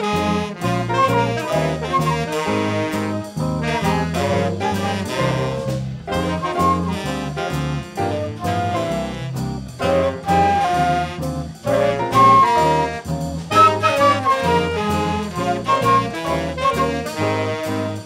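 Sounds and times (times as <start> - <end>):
drums and cymbals: 0.0 - 18.0
jazz ensemble melody line: 0.0 - 18.0
walking bass: 0.0 - 18.0.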